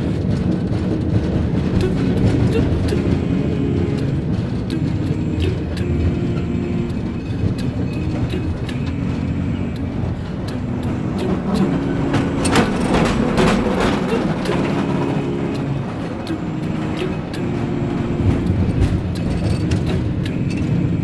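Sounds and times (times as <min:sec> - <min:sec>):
cable car low rumble: 0:00.0 - 0:21.0.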